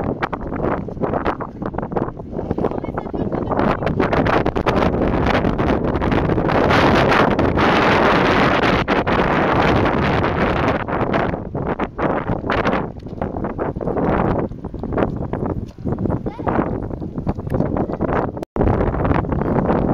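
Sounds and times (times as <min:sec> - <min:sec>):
wind buffeting microphone: 0:00.0 - 0:19.9.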